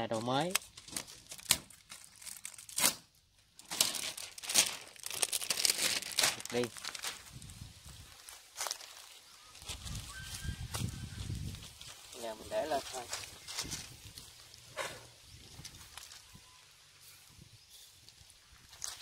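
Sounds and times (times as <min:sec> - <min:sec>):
plastic wrapping crinkling and tearing: 0:00.1 - 0:14.6, 0:15.5 - 0:16.6, 0:18.6 - 0:19.0.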